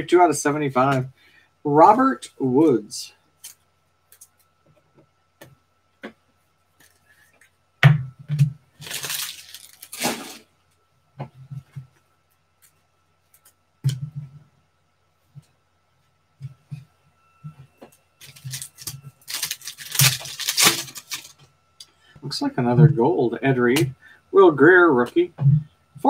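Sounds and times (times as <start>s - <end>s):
foil pack ripping: 8.8s - 10.4s, 18.2s - 21.4s.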